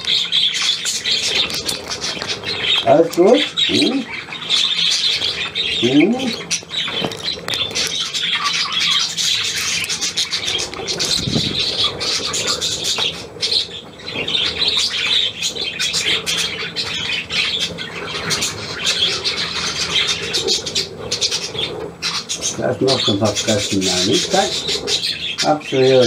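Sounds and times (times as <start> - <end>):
budgerigars chattering and warbling: 0.0 - 26.0.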